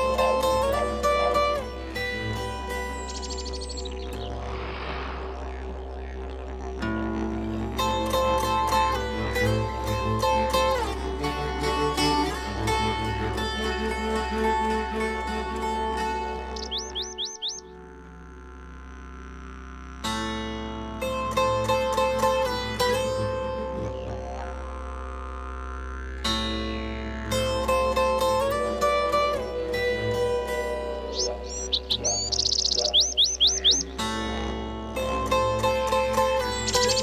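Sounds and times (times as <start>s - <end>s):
plucked-string music: 0.0s - 4.4s, 5.4s - 19.2s, 19.8s - 37.0s
bird chirping: 2.7s - 4.7s, 16.4s - 17.8s, 30.9s - 34.0s, 36.4s - 37.0s.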